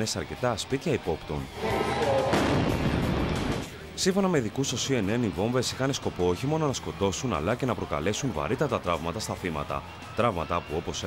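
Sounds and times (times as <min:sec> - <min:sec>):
bomb explosion: 0:01.6 - 0:03.7.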